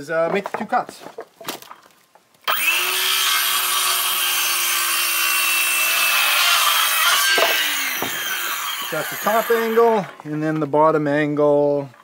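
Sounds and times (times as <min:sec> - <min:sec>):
electric power saw cutting wood: 0:02.5 - 0:10.2.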